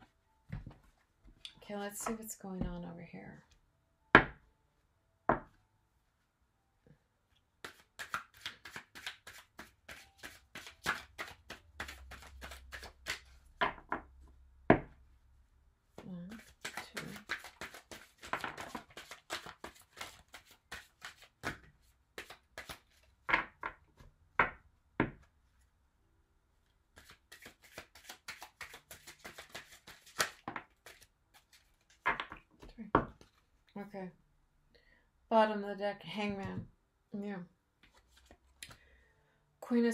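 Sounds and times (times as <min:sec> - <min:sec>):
cards being shuffled: 0:07.6 - 0:13.4, 0:16.0 - 0:23.3, 0:26.9 - 0:33.6, 0:37.8 - 0:38.8.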